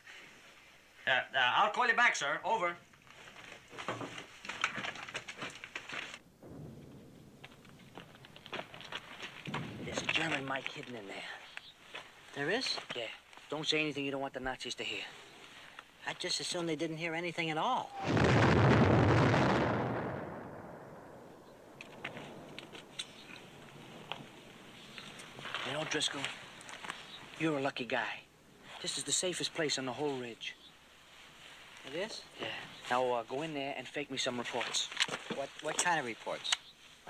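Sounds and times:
rustling and scuffing of movement: 2.8 - 6.2, 7.4 - 14.1, 21.9 - 27.6, 28.6 - 33.5
explosion rumble: 6.3 - 10.6, 18.0 - 24.5.

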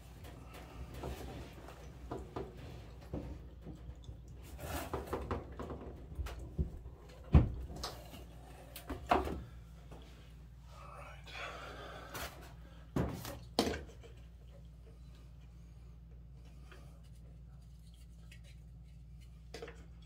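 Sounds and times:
knocks and clunks on dryer console: 4.8 - 7.9, 12.9 - 14.0.

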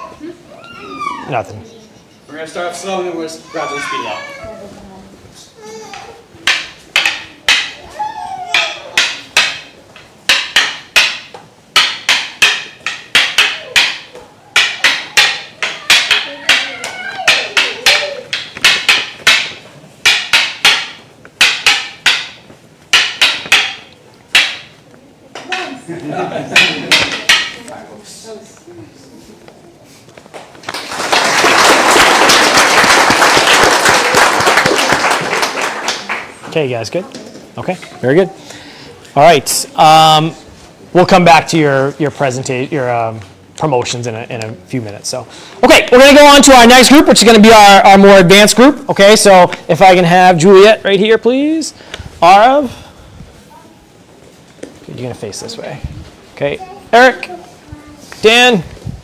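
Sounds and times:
wooden sticks clacking together: 5.9 - 25.7, 26.5 - 27.8
audience applause: 30.7 - 36.3.

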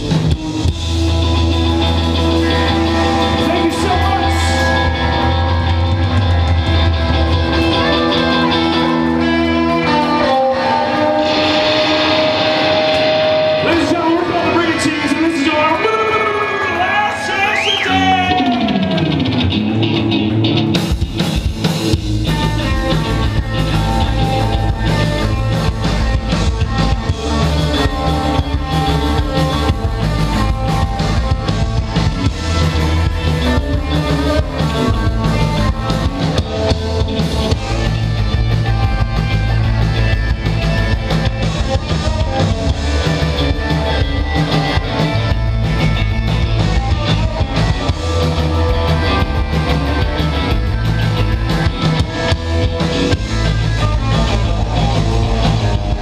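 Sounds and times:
drum kit beat: 0.0 - 10.2, 16.8 - 56.0
electric bass: 0.0 - 56.0
electric guitars: 0.0 - 56.0.

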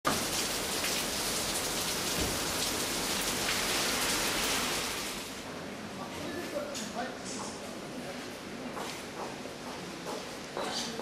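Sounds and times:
louder raindrops: 0.1 - 5.5
steady rain falling: 0.1 - 5.6.

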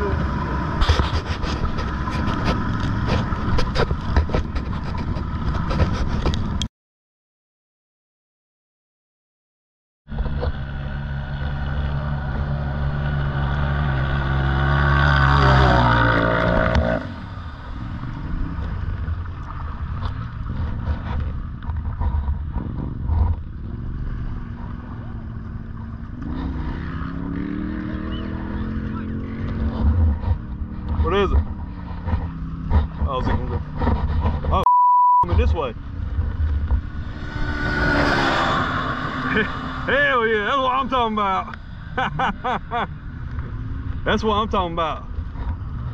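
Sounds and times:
utility vehicle engine revving: 10.1 - 34.6, 35.6 - 44.1
censor bleep: 34.6 - 35.3.

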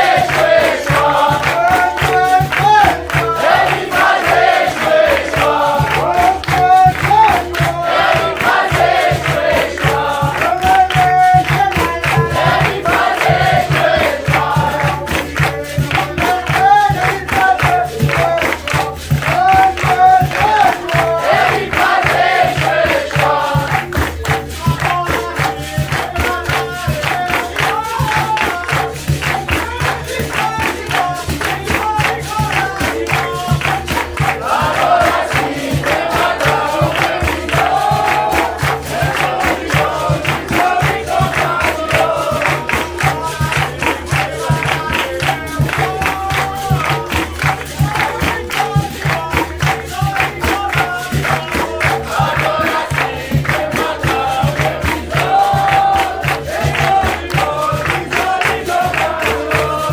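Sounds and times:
group singing: 0.0 - 59.9
hand drum: 0.0 - 59.9
pandeiros: 0.0 - 59.9
people clapping in time: 0.0 - 59.9.

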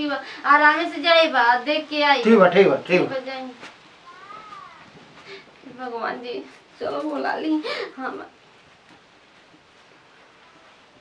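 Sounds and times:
person speaking: 2.2 - 3.2
cat meowing faintly: 4.0 - 5.0, 10.3 - 10.9.

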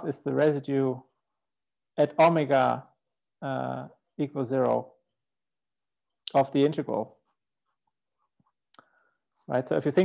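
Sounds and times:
marker scratching on paper: 7.2 - 8.6.

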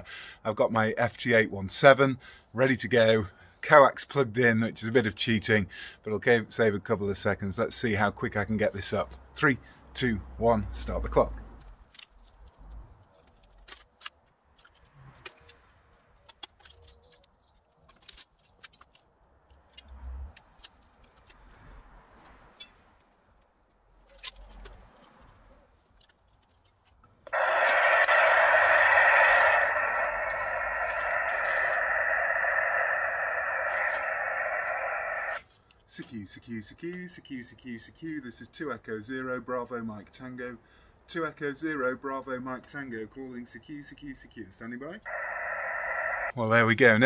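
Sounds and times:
loud steady hiss: 27.3 - 35.4, 45.1 - 46.3.

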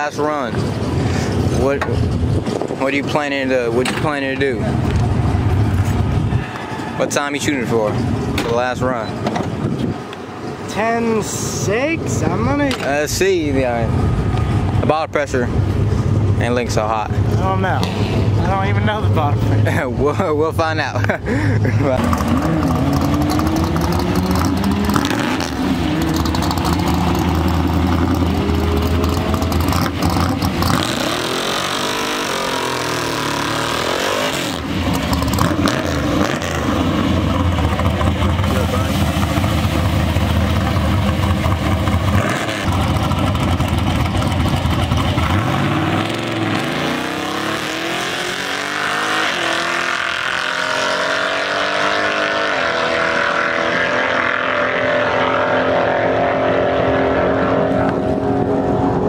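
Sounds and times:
truck engine revving: 21.0 - 59.0
truck accelerating away: 21.1 - 59.0.

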